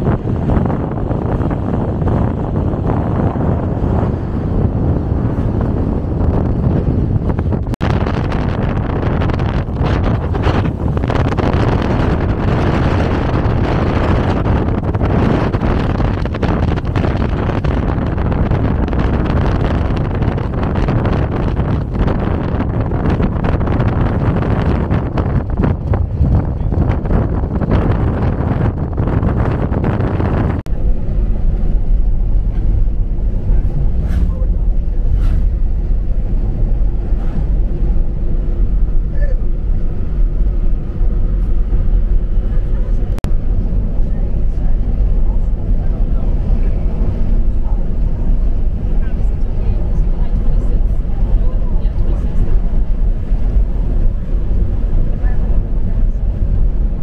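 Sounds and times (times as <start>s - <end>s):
diesel engine rumble: 0.0s - 57.0s
tyres on road: 0.0s - 57.0s
wind rushing over microphone: 0.0s - 57.0s.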